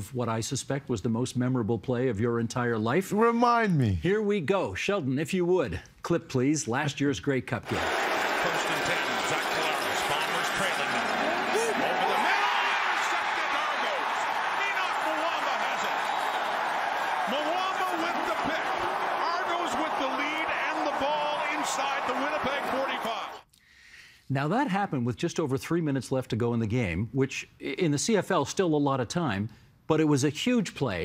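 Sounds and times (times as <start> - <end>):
stadium crowd cheering: 7.6 - 23.4.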